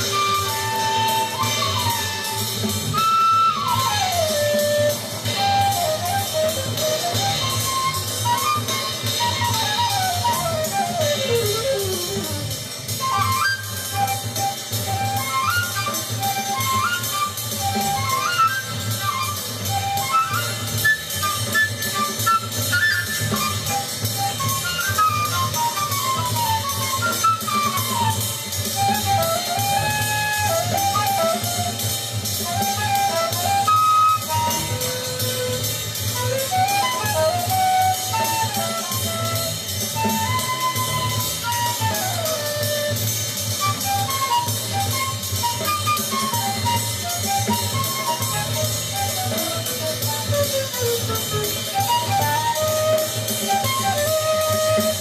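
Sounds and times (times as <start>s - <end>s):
bass: 0.0s - 55.0s
drum kit: 0.0s - 55.0s
horn playing fast runs: 0.0s - 55.0s.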